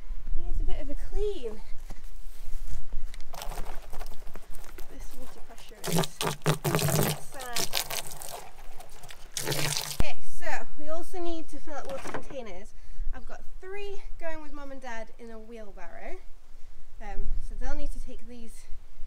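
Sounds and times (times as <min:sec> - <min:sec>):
hose water splashing into plastic bin: 0:03.3 - 0:10.0
person speaking: 0:03.4 - 0:10.3.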